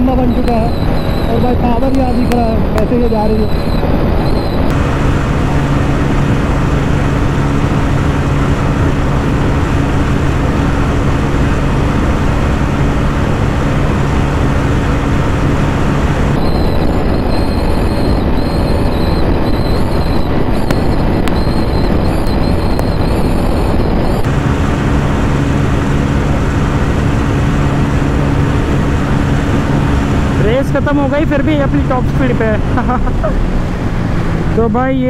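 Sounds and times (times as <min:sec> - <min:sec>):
motorcycle engine at high revs: 0:00.0 - 0:35.0
wind rush on microphone: 0:00.0 - 0:35.0.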